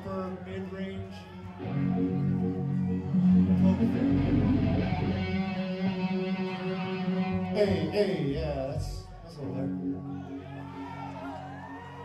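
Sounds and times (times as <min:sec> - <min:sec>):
electric guitar chords: 0:01.5 - 0:12.0.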